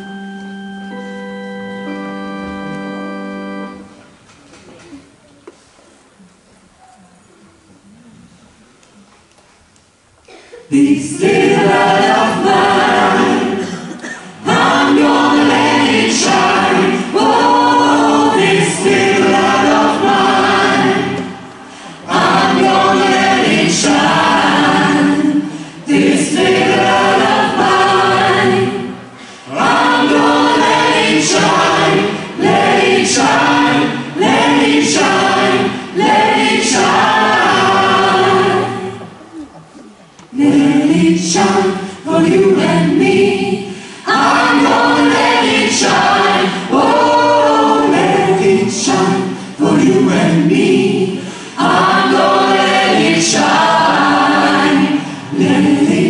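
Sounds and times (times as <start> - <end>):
chorus singing: 10.7 - 56.0.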